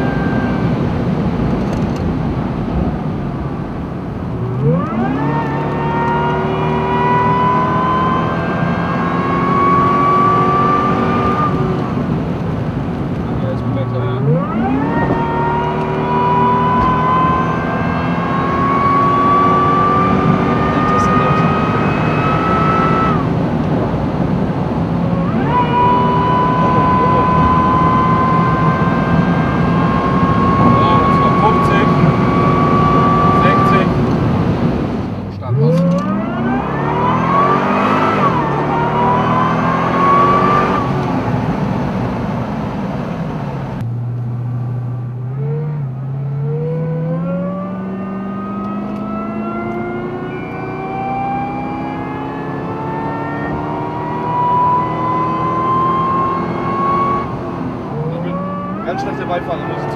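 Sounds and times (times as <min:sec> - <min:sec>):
car engine accelerating: 0:00.0 - 0:59.9
supercharger whine: 0:00.0 - 0:59.9.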